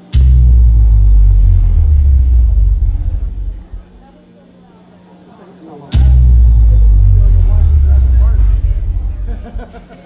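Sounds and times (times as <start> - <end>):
deep bass boom through speakers: 0.0 - 4.2, 5.9 - 10.0
faint crowd voices: 0.0 - 10.0.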